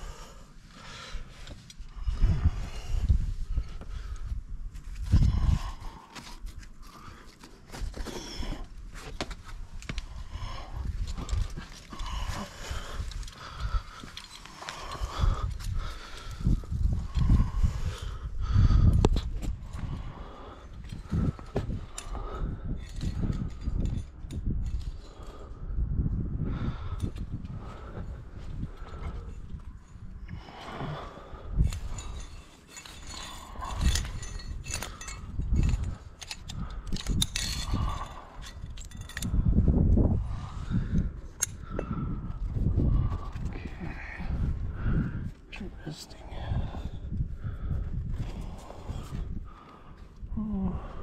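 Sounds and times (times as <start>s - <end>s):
wind rumbling on microphone: 0.0s - 51.0s
climbing gear clinking: 4.9s - 25.7s, 26.8s - 51.0s
carabiner clicks: 31.6s - 39.5s, 41.0s - 41.9s.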